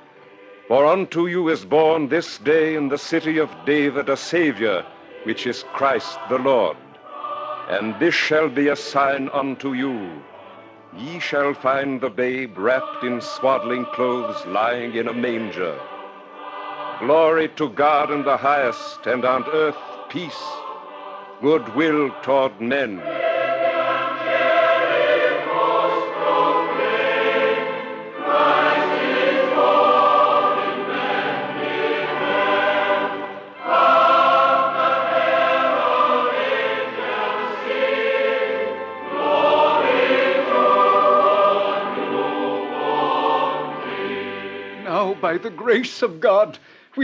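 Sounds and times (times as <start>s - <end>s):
choir singing sacred piece: 0.0s - 46.2s.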